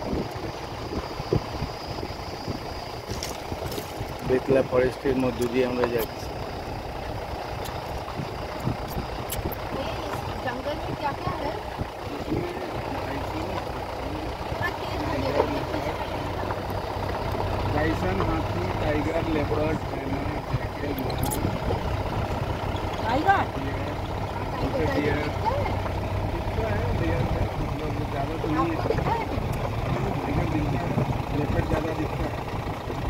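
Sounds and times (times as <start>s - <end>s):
vehicle engine low rumble: 0.0s - 33.0s
people talking: 4.2s - 6.3s, 9.6s - 16.6s, 17.6s - 21.8s, 23.0s - 32.4s.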